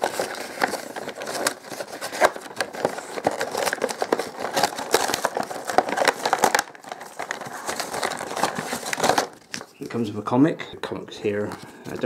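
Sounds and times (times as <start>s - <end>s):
plastic packaging crinkling and tearing: 0.0s - 9.9s.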